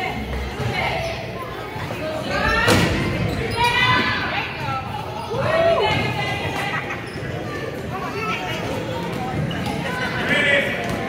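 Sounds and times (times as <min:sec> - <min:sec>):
voices calling out echoing: 0:00.0 - 0:11.0.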